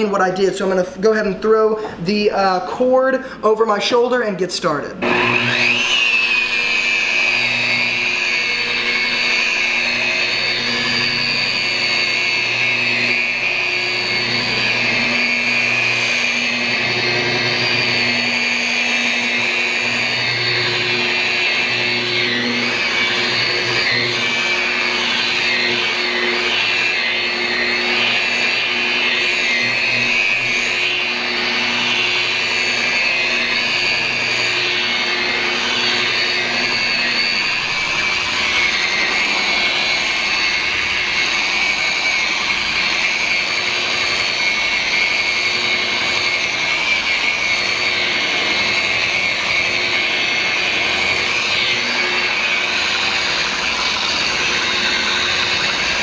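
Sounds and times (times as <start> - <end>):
rotary polisher motor whine: 0.0 - 4.4, 5.0 - 56.0.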